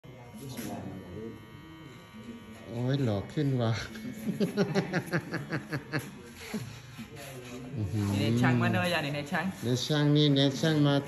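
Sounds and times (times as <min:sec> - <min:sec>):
electric hair clipper buzzing: 0:00.1 - 0:11.0.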